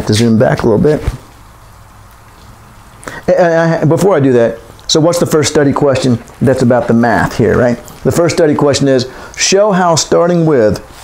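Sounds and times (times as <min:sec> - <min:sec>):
person speaking: 0:00.0 - 0:01.4, 0:03.0 - 0:11.0
steady low hum: 0:00.0 - 0:11.0.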